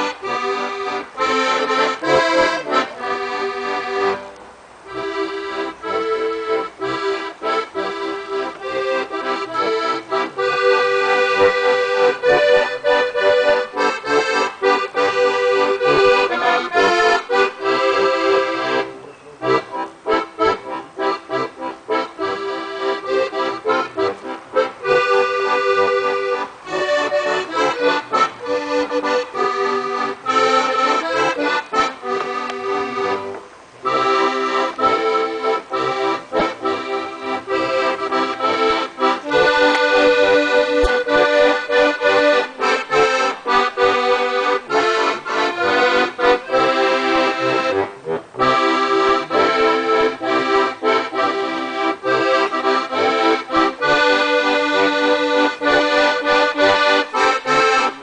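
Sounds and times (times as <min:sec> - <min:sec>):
button accordions playing a duet: 0:00.0 - 0:58.0.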